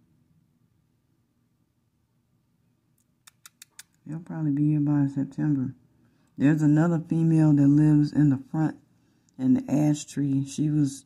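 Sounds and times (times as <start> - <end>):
sharp dry clicks: 3.0 - 4.0.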